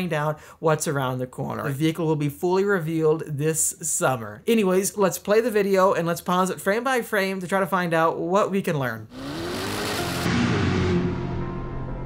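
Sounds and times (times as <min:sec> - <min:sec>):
processed engine revving: 0:09.1 - 0:12.0
low music tones: 0:09.2 - 0:12.0.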